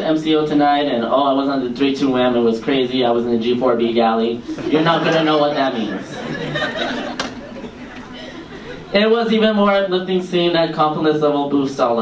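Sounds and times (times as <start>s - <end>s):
audience murmuring and chuckling: 4.4s - 9.2s.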